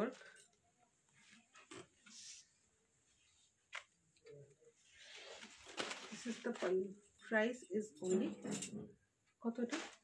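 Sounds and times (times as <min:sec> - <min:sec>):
fabric rustling: 0:00.0 - 0:07.6, 0:09.6 - 0:10.0.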